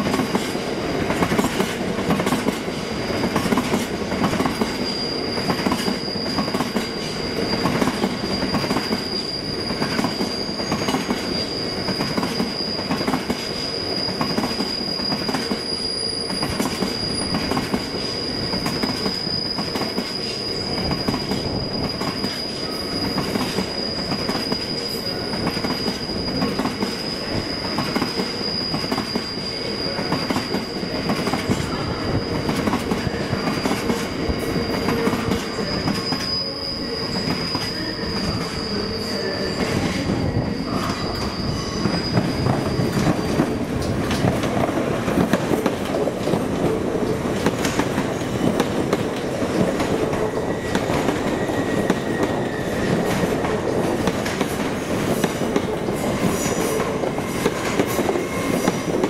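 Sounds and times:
train wheels squealing: 0.0 - 59.0.

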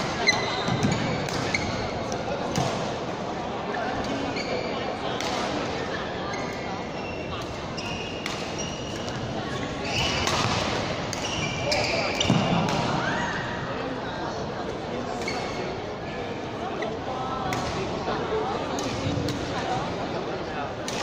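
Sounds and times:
voices echoing in hall: 0.0 - 21.0
shoes squeaking on court floor: 0.1 - 2.7, 3.7 - 4.9, 6.2 - 12.6, 15.2 - 15.8
rackets striking shuttlecock: 0.1 - 2.9.

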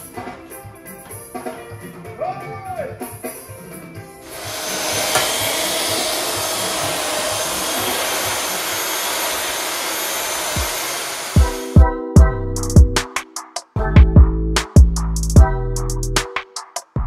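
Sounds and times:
electric paddle mixer churning: 4.3 - 11.7
music with heavy bass beat: 11.4 - 17.0.

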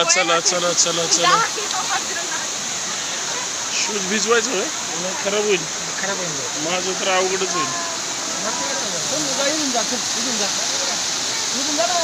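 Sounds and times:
waterfall rushing over rocks: 0.0 - 12.0
people calling out: 7.4 - 9.1.

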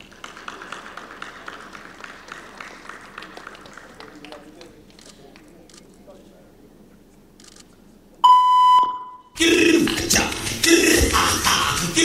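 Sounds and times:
loud electronic beep: 8.2 - 9.4.

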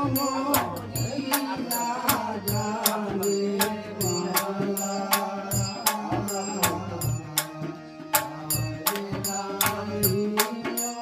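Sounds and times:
harmonium drone: 0.0 - 11.0.

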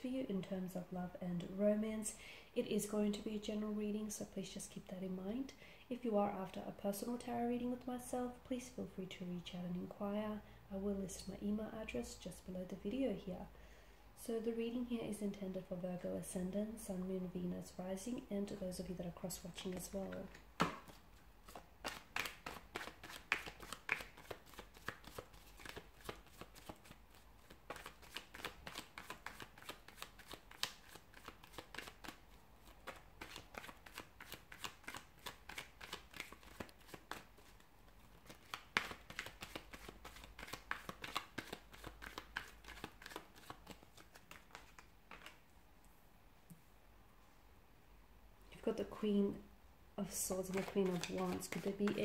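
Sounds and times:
cards being shuffled: 19.6 - 45.4, 50.4 - 52.0.

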